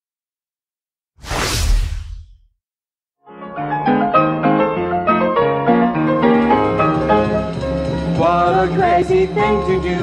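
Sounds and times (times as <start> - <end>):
whoosh with deep rumble: 1.2 - 2.4.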